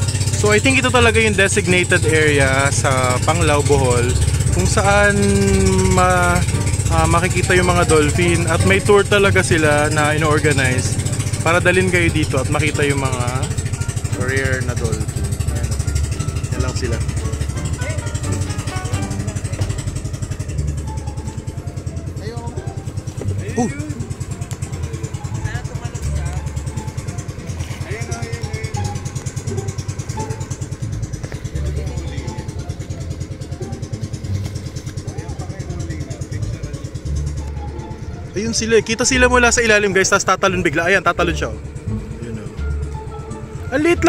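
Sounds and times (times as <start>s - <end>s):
background music: 0.0s - 44.0s
boat engine puttering: 0.0s - 44.0s.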